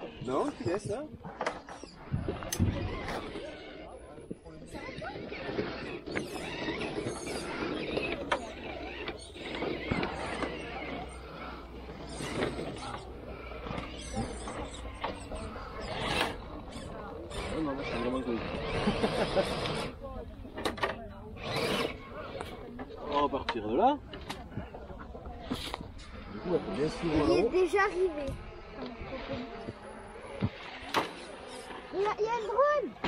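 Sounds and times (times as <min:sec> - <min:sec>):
electric motor and gears whirring: 0:00.0 - 0:33.0.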